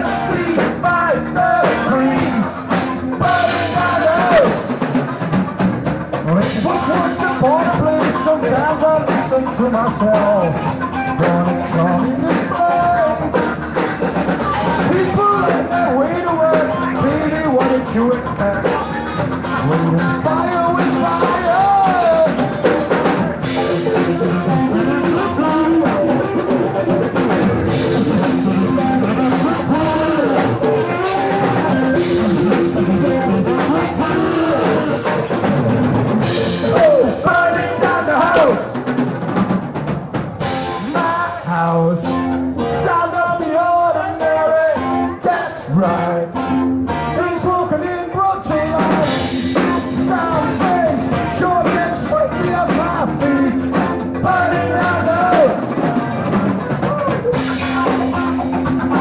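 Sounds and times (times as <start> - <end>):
drum kit: 0.0 - 46.0, 46.6 - 59.0
electric guitars: 0.0 - 59.0
live rock band playing: 0.0 - 59.0.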